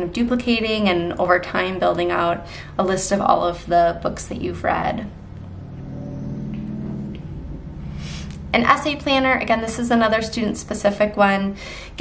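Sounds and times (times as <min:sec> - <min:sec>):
low steady rumble: 0:00.0 - 0:11.6
faint hum: 0:04.4 - 0:11.9.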